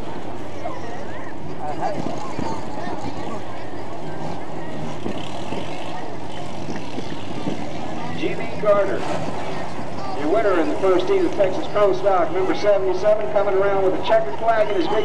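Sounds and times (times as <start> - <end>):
murmur of crowd voices: 0.0 - 15.0
race car engine running: 0.0 - 15.0.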